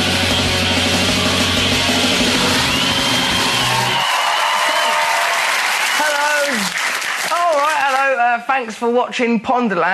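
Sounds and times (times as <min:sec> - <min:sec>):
theme music: 0:00.0 - 0:05.9
audience applauding and cheering: 0:00.0 - 0:08.4.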